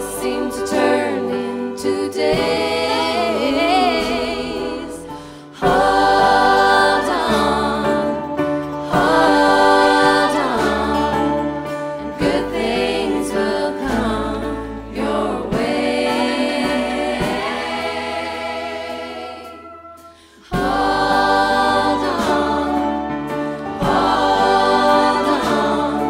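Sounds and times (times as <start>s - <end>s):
gospel choir singing with band: 0.0s - 26.0s.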